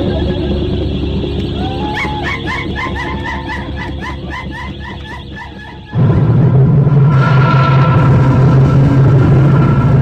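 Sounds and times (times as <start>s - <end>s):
low drone and hum: 0.0s - 10.0s
repeating yelping chirp: 0.5s - 6.0s.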